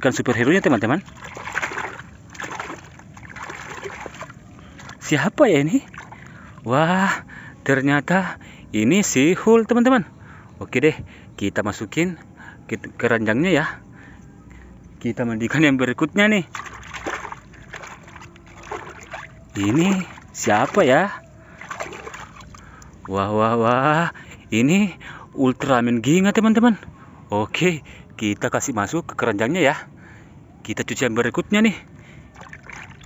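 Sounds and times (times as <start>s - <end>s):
water splashing and sloshing: 0.0s - 7.2s, 15.5s - 23.3s, 31.6s - 33.0s.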